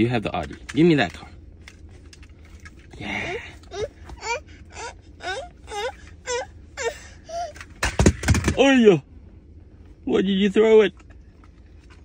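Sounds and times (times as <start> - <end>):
toddler whining and whimpering: 3.2 - 7.7.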